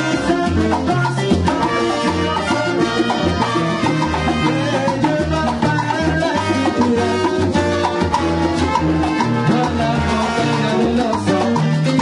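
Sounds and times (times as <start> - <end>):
bass line: 0.0 - 12.0
conga drums: 0.0 - 12.0.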